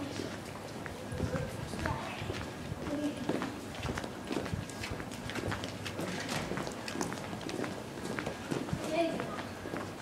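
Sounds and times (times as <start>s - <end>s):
footsteps on cobblestones: 0.0s - 10.0s.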